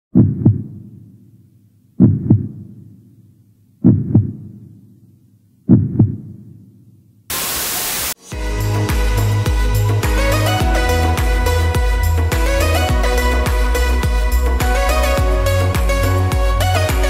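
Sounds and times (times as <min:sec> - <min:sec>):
heartbeat double thumps: 0:00.2 - 0:00.8, 0:02.0 - 0:02.8, 0:03.8 - 0:04.6, 0:05.7 - 0:06.4, 0:08.4 - 0:17.0
static hiss: 0:07.3 - 0:08.3.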